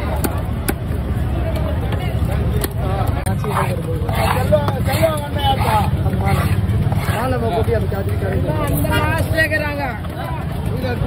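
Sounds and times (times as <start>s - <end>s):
people talking: 1.1s - 11.0s.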